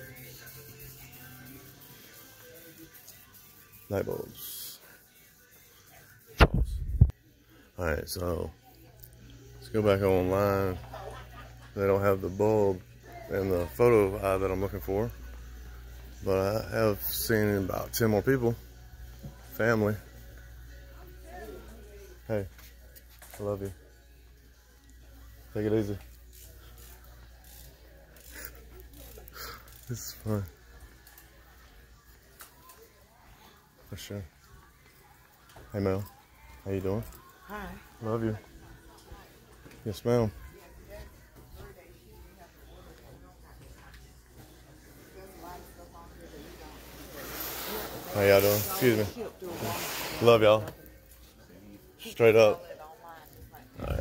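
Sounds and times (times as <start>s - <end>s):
faint music over loudspeakers: 0.0s - 54.0s
faint rubbing noise: 46.3s - 50.5s.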